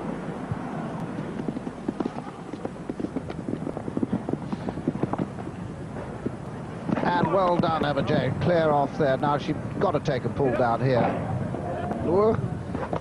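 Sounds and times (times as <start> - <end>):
horse hoofbeats on grass: 1.0 - 8.1.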